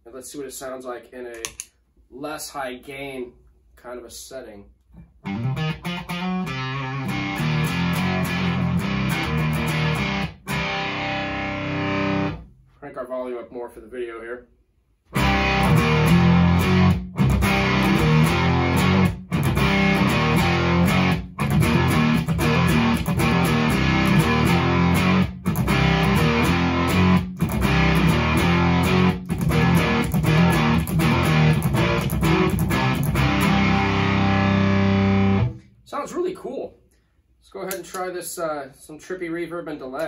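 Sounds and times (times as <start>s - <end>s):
fuzz electric guitar riff: 5.2s - 12.5s, 15.1s - 35.6s.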